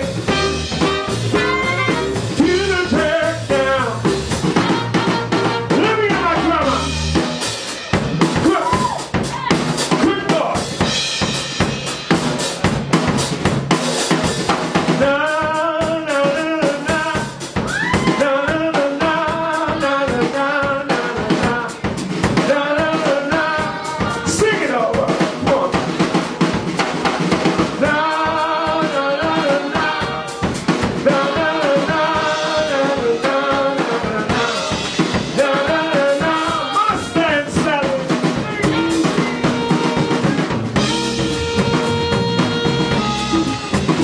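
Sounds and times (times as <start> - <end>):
man singing: 0.0 - 4.9, 5.7 - 7.0, 14.9 - 26.1, 27.7 - 43.3
drums with snare and rimshots: 0.0 - 44.0
soul band playing: 0.0 - 44.0.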